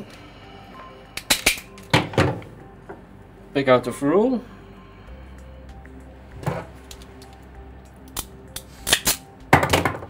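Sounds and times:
hand tool clicking and snapping: 8.1s - 9.2s.

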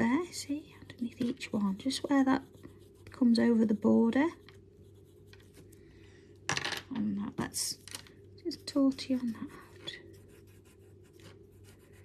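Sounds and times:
blending stump rubbing on paper: 0.9s - 5.7s.

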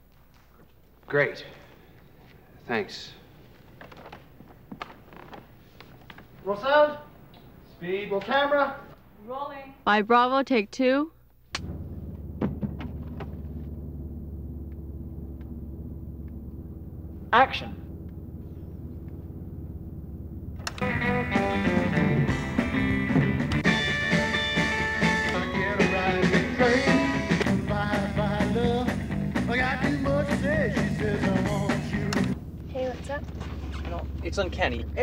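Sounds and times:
steady low hum: 0.0s - 35.0s
rockabilly song on car radio: 20.7s - 32.4s.

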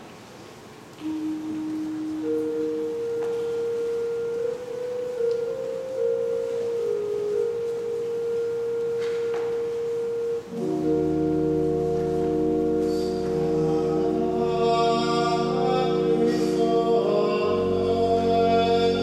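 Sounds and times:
church organ held notes: 1.0s - 19.0s.

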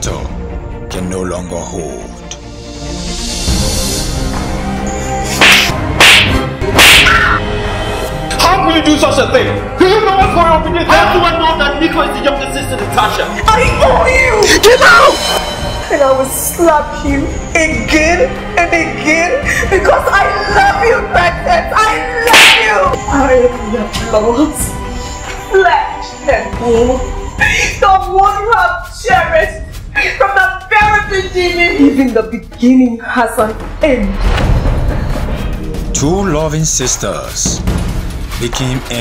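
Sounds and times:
music: 0.0s - 39.0s
loud slaps: 5.3s - 7.4s.

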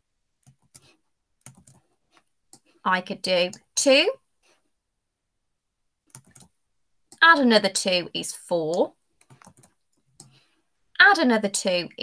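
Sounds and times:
keyboard and mouse clicks: 0.4s - 2.7s, 6.0s - 7.3s, 8.7s - 10.4s
person speaking: 2.6s - 4.3s, 7.1s - 9.6s, 11.0s - 12.0s.

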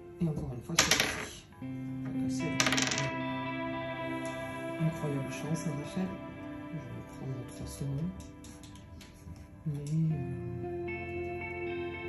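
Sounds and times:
soft background music: 0.0s - 12.0s
die clattering on wooden table: 0.8s - 1.4s, 2.6s - 3.1s.

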